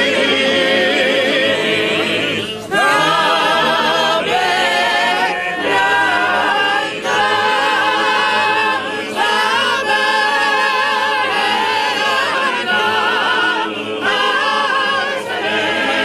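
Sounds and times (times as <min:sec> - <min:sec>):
group singing unaccompanied: 0:00.0 - 0:16.0.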